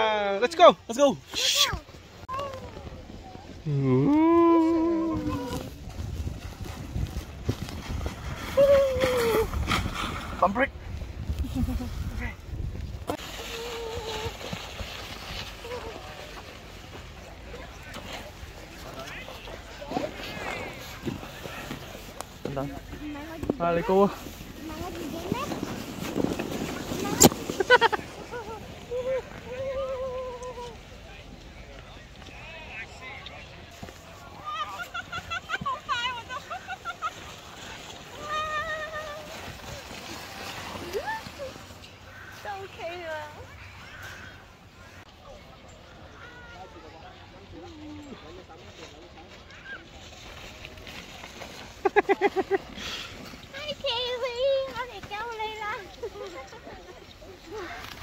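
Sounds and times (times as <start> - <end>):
plastic sled sliding over snow: 1.3 - 58.0
wind rumbling on microphone: 2.2 - 16.3.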